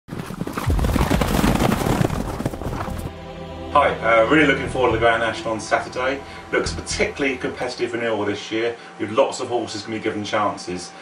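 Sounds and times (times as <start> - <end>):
horses galloping on turf: 0.1 - 3.1
man speaking: 3.7 - 10.9.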